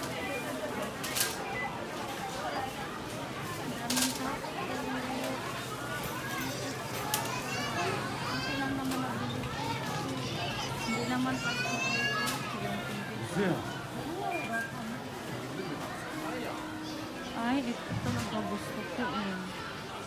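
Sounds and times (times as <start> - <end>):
crowd chatter: 0.0 - 20.0
children calling and squealing: 5.6 - 13.2.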